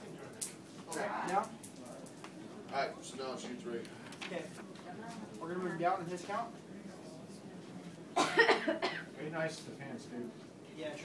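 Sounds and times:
person coughing: 8.2s - 9.1s.

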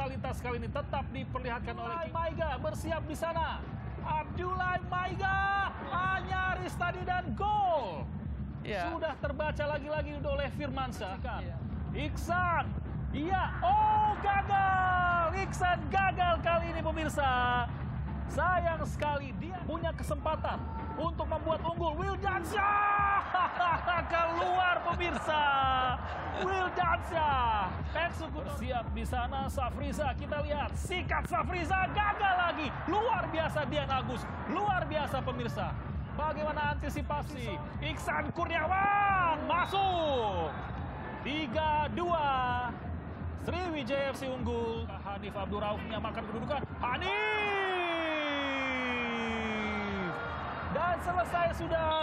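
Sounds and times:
commentator shouting: 22.0s - 27.6s, 46.9s - 50.3s
man commentating: 46.7s - 52.0s.

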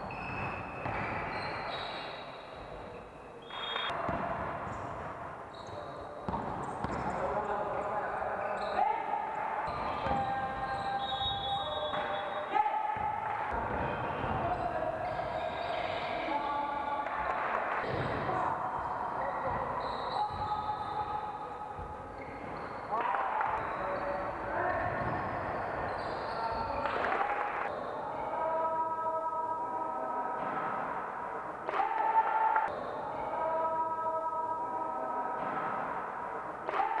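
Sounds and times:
basketball bouncing on gym floor: 0.0s - 1.5s, 6.2s - 7.2s
echoing voices: 0.0s - 37.0s.

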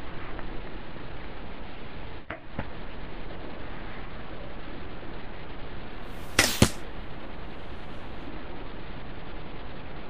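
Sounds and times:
bow shot cracks: 6.2s - 6.9s.

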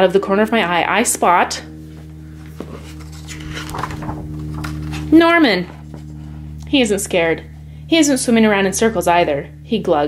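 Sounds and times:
low background hum: 0.0s - 10.0s
book page turning: 2.6s - 5.1s.

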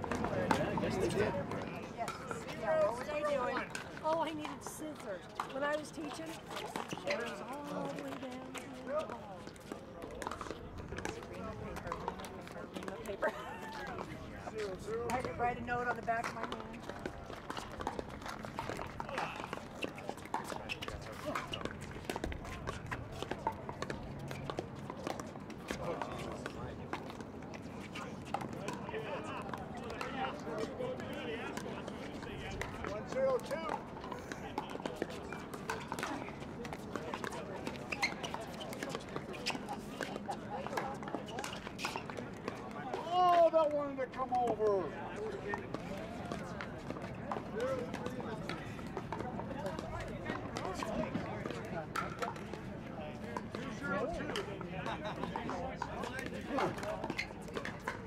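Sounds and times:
background chatter of players: 0.0s - 58.0s.

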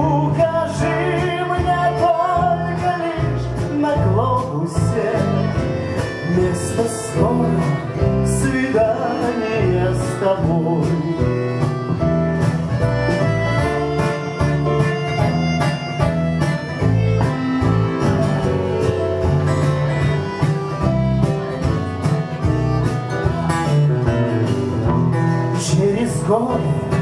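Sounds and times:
acoustic guitar: 0.0s - 27.0s
bass: 0.0s - 27.0s
drums keeping steady beat: 0.0s - 27.0s
keyboard: 0.0s - 27.0s
clarinet: 5.0s - 24.9s
button accordion: 5.2s - 8.0s, 9.0s - 24.9s.

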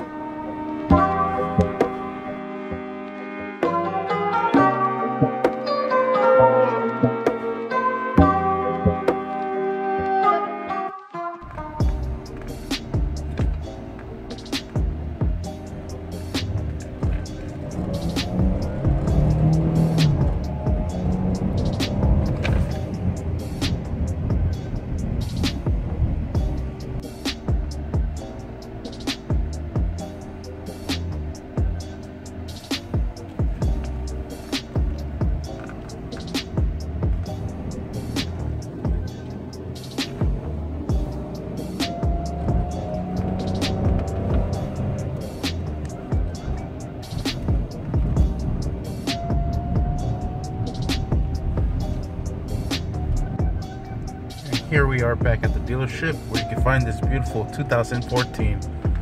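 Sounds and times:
music: 0.0s - 59.0s
truck engine revving: 11.4s - 59.0s.

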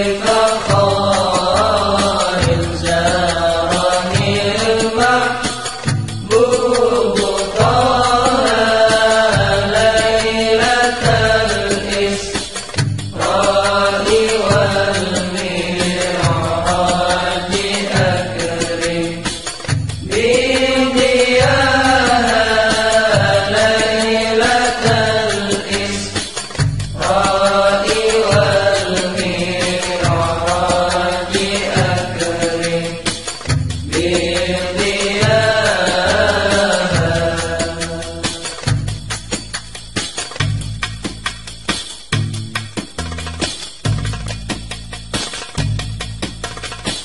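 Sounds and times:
devotional song with instruments: 0.0s - 47.0s.

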